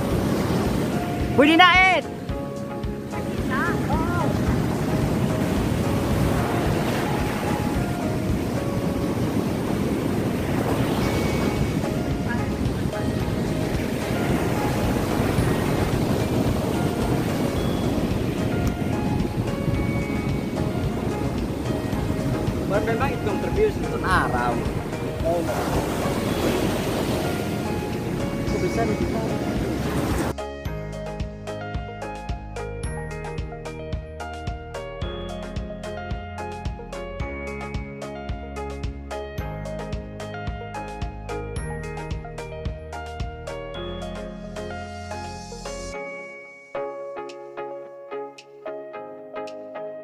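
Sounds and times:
ocean surf breaking: 0.0s - 30.4s
wind buffeting microphone: 0.0s - 30.4s.

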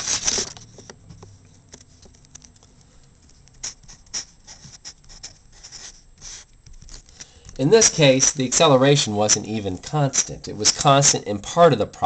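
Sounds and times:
marker pen scratching on paper: 0.0s - 11.3s.

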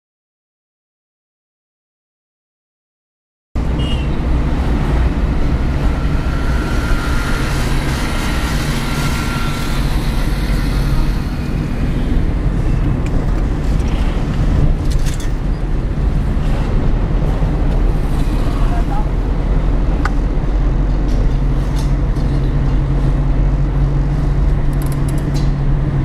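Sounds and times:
car engine and tyre rumble: 3.6s - 26.0s
road traffic: 3.6s - 26.0s.

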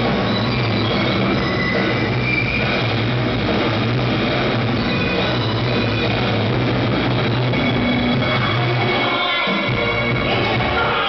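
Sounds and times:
amplified electric guitar: 0.0s - 11.0s
high whining tones: 0.0s - 11.0s
live rock band droning: 0.0s - 11.0s.

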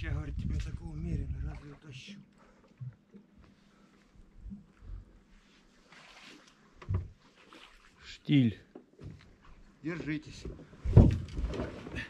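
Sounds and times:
soft rustle: 3.4s - 8.0s
knocks and bumps in a boat: 6.8s - 7.2s, 8.7s - 12.0s.

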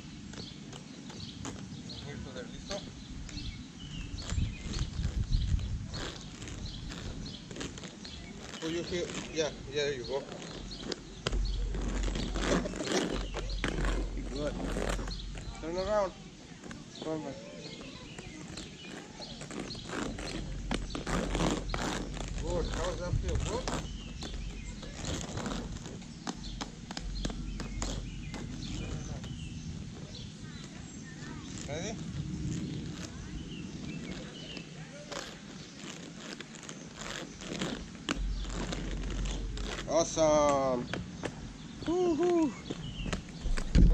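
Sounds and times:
footsteps on paved path: 0.0s - 43.9s
low rumble: 10.6s - 16.4s, 19.7s - 34.2s, 42.9s - 43.9s.

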